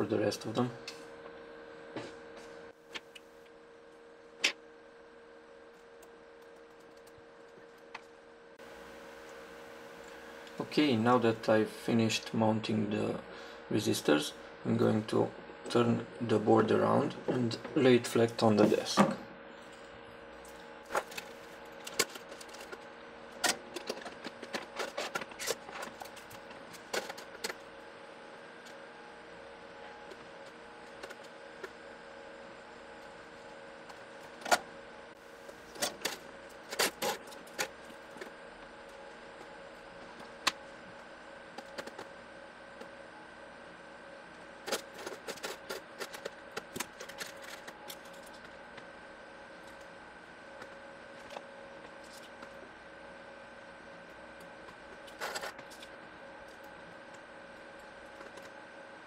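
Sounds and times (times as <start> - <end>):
faint steady hum: 0.0 - 59.0.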